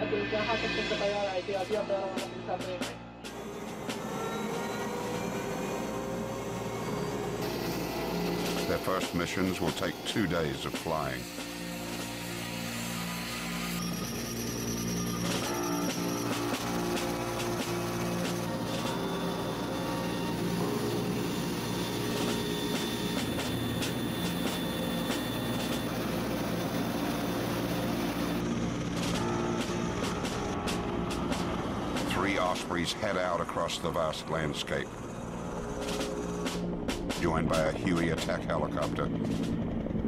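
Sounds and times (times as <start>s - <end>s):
aircraft engines and rotors drone: 0.0s - 40.0s.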